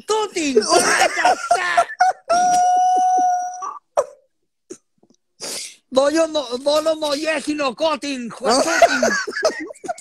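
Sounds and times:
man wailing: 0.6s - 4.0s
hissing breath: 5.4s - 5.9s.

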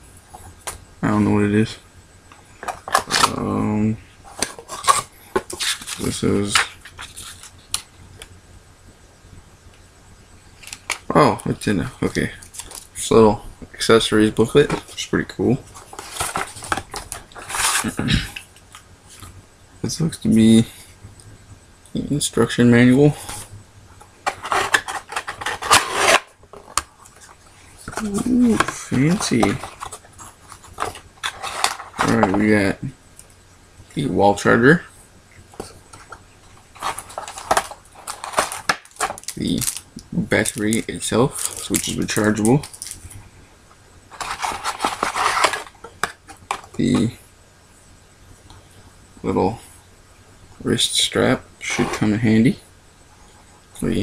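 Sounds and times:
paper sliding rustle: 15.6s - 18.4s, 24.2s - 26.6s, 44.1s - 45.8s
packaging clicks and rustles: 15.7s - 18.8s, 24.2s - 32.4s, 35.6s - 43.2s, 44.1s - 47.1s.

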